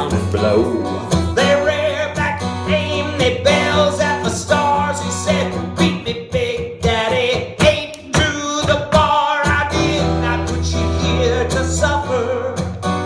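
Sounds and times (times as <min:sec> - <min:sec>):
acoustic guitar strumming: 0:00.0 - 0:13.0
man singing: 0:00.0 - 0:13.0.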